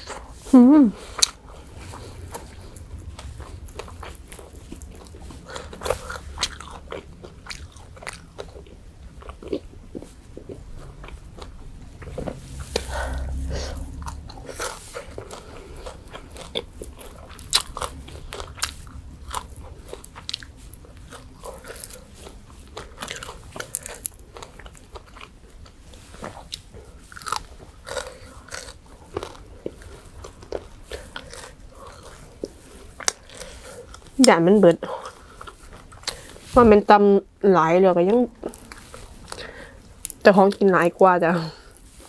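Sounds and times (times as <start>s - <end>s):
mouth sounds: 0.0s - 1.4s
person chewing crunchy food: 0.0s - 36.7s, 38.0s - 40.9s.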